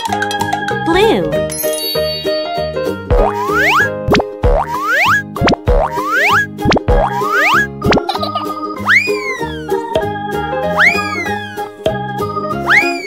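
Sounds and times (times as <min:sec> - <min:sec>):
bouncy children's music: 0:00.0 - 0:13.0
cartoon boing sound effects: 0:03.1 - 0:08.2.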